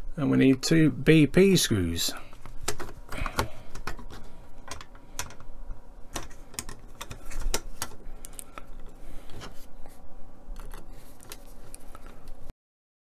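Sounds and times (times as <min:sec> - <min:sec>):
plastic parts clicking and tapping: 0:02.4 - 0:05.5, 0:06.1 - 0:09.6, 0:10.6 - 0:12.2.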